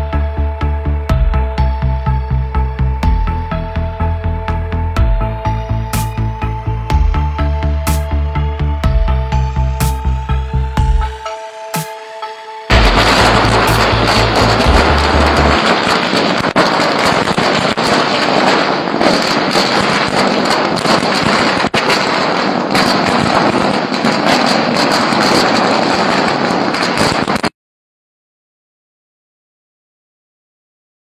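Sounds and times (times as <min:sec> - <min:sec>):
firecrackers crackling: 0:12.7 - 0:27.5.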